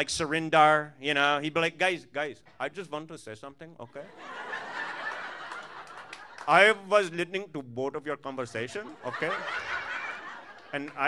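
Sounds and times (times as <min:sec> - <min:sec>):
audience laughing: 0:04.0 - 0:06.9, 0:08.7 - 0:11.0.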